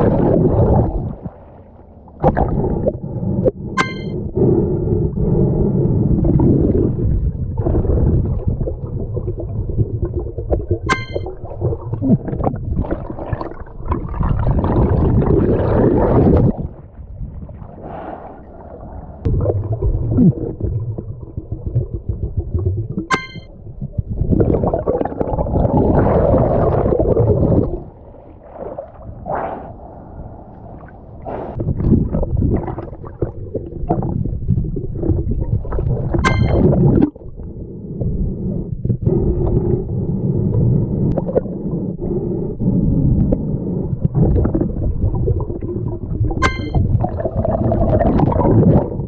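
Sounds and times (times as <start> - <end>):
water splashing and gurgling: 0.0 - 37.6, 42.7 - 49.0
dull underwater rumble: 0.0 - 49.0
glass bottle clinking underwater: 3.8 - 4.3, 10.9 - 11.5, 23.1 - 23.6, 36.2 - 36.8, 46.4 - 47.0.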